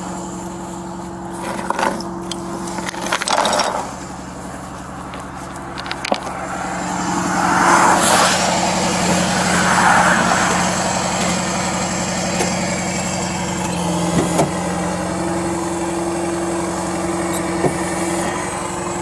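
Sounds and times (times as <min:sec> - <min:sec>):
tow truck engine running: 0:00.0 - 0:19.0
hydraulic rushing swells: 0:05.8 - 0:14.7.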